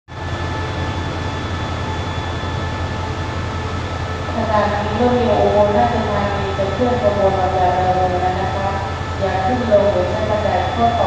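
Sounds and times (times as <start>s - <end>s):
faint high whine: 0.1s - 11.0s.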